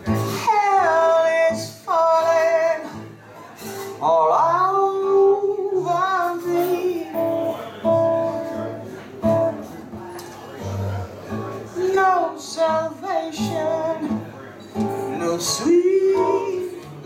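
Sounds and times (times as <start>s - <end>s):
guitar: 0.0s - 17.0s
woman singing rhythm and blues: 4.0s - 7.4s, 11.7s - 17.0s.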